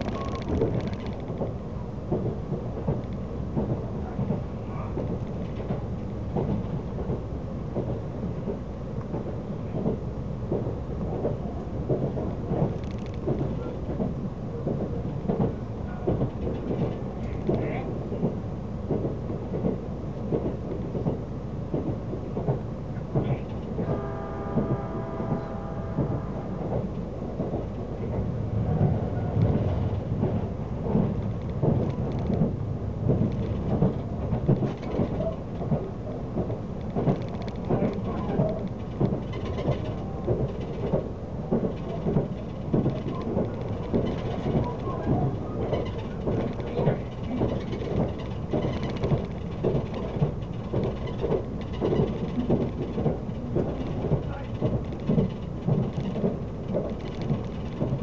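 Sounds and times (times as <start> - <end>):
clicks and knocks from track: 0.0 - 58.0
train wheels rumbling on rail: 0.0 - 58.0.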